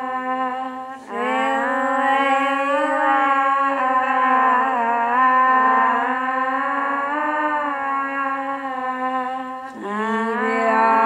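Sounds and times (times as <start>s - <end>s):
looped women's voices holding notes: 0.0s - 11.0s.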